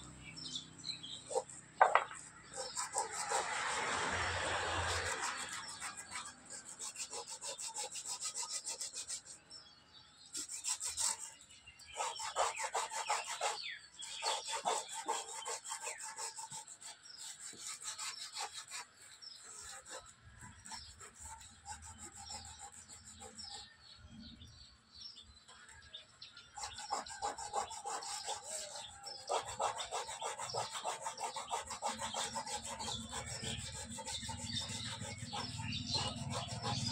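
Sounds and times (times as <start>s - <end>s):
sandpaper rubbing on wood: 1.1s - 9.4s, 10.3s - 23.8s, 26.5s - 36.9s.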